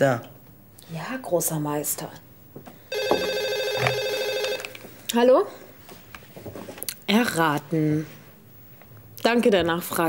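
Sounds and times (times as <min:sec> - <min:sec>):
electronic telephone ring: 0:02.9 - 0:04.9.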